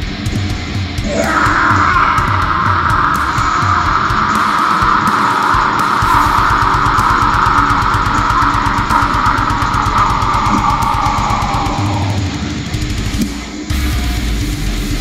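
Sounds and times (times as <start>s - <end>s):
distorted electric guitar: 0.0s - 15.0s
fast drum beat: 0.0s - 15.0s.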